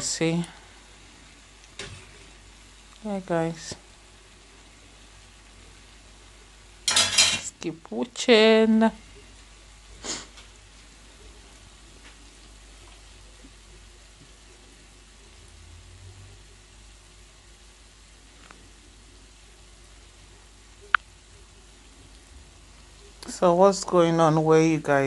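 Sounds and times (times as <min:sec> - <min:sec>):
dough deep-frying in oil: 0:00.0 - 0:25.0.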